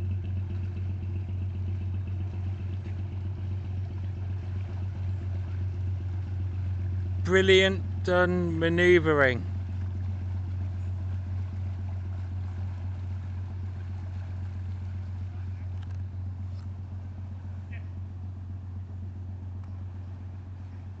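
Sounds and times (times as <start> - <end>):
boat diesel engine humming: 0.0 - 21.0.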